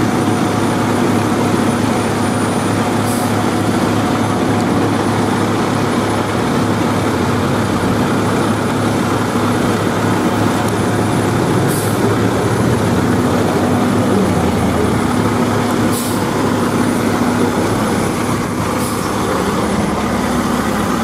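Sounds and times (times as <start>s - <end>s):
diesel truck engine running: 0.0s - 21.0s.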